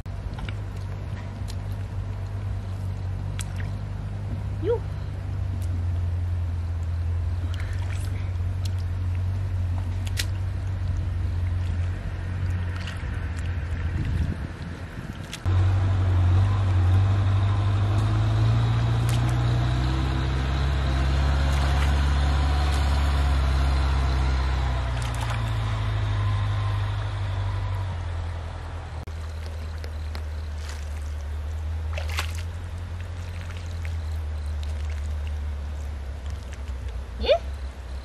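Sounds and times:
low motor hum: 0:00.0 - 0:38.0
hands splashing in shallow water: 0:24.8 - 0:25.6, 0:29.1 - 0:37.0.

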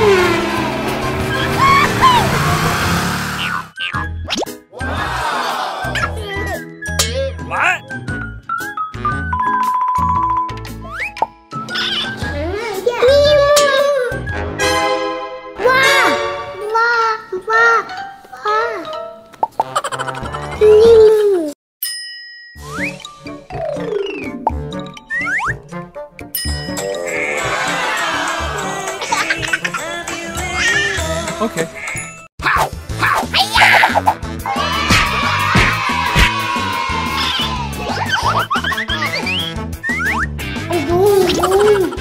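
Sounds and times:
children's background music: 0:03.4 - 0:21.4, 0:22.6 - 0:32.0, 0:32.6 - 0:42.0
background music with rising swoops: 0:22.6 - 0:31.8
wobbling warbling tone: 0:26.7 - 0:28.0.

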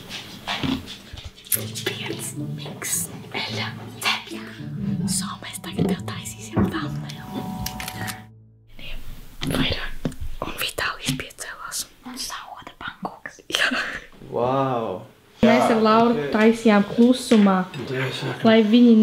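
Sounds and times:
background music: 0:00.5 - 0:10.3.

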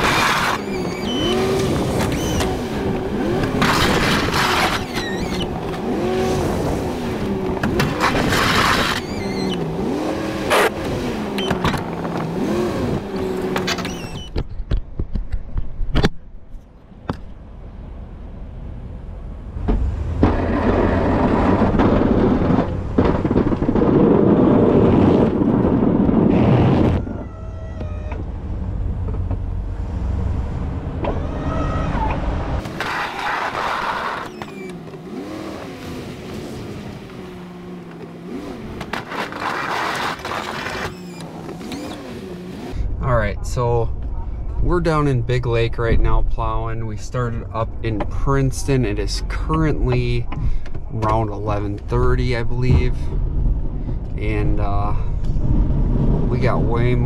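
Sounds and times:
pickup engine revving: 0:00.0 - 0:14.0, 0:32.4 - 0:42.8
plow blade pushing snow: 0:00.0 - 0:14.3, 0:32.6 - 0:42.8.

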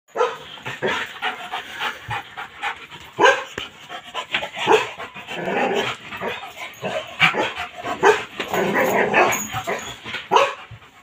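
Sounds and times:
dog barking: 0:00.1 - 0:00.5, 0:03.2 - 0:03.6, 0:04.6 - 0:05.0, 0:07.3 - 0:08.3, 0:09.1 - 0:10.7
dog panting hard: 0:00.2 - 0:11.0.

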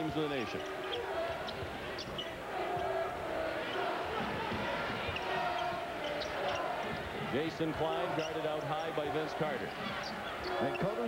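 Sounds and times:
large crowd noise: 0:00.0 - 0:11.0.

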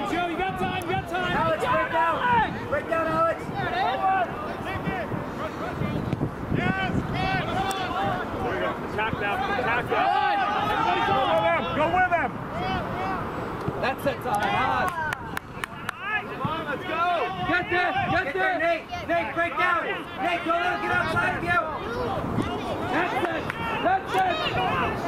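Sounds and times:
players and spectators shouting: 0:00.0 - 0:25.0.

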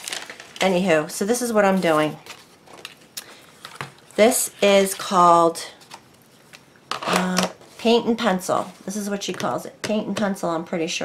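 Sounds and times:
woman speaking: 0:00.6 - 0:02.2, 0:04.2 - 0:05.8, 0:07.0 - 0:11.0.

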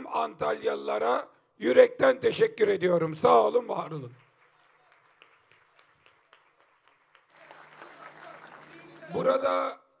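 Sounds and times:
audience applause: 0:04.2 - 0:09.3.

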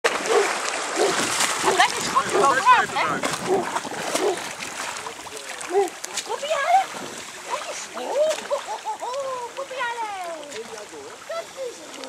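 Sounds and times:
water splashing: 0:00.0 - 0:12.0.

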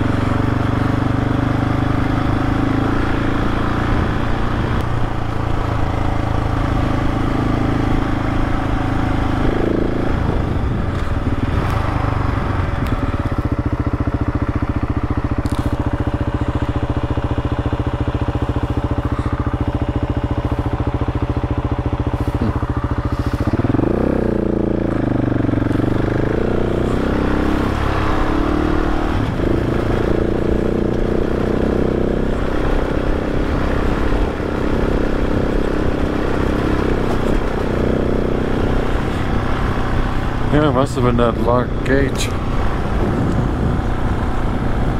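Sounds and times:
motorcycle engine running: 0:00.0 - 0:44.9.

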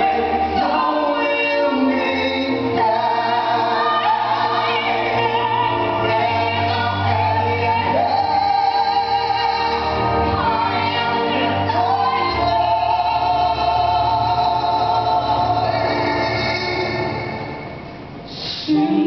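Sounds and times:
woman and man singing duet: 0:00.0 - 0:17.4, 0:18.4 - 0:19.0
amplified accompaniment with bass: 0:00.0 - 0:19.0.

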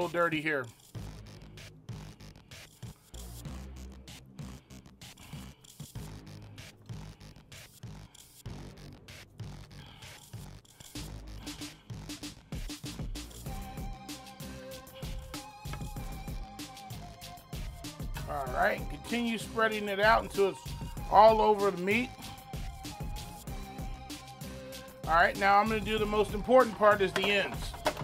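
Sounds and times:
background music with steady beat: 0:00.0 - 0:28.0.

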